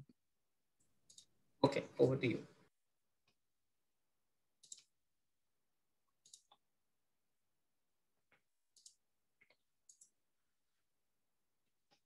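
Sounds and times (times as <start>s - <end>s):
computer mouse clicks: 1.1s - 1.3s, 4.6s - 4.9s, 6.1s - 6.6s, 8.3s - 10.2s.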